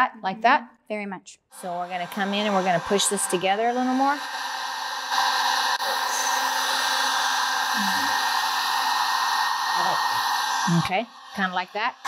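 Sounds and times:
heat gun blowing: 0:01.6 - 0:12.0.

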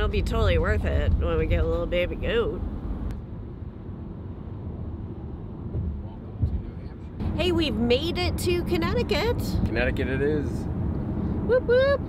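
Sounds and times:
car tyre and engine rumble: 0:00.0 - 0:12.0.

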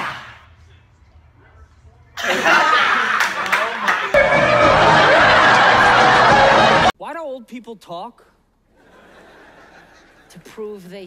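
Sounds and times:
young people laughing and shrieking: 0:04.2 - 0:06.9.

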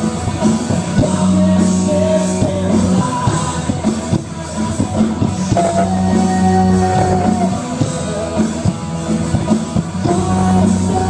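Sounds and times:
electric guitars: 0:00.0 - 0:11.0.

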